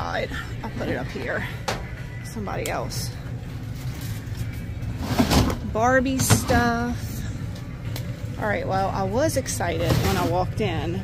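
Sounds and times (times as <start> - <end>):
faint background music: 0.0 - 11.0
low store rumble: 0.0 - 11.0.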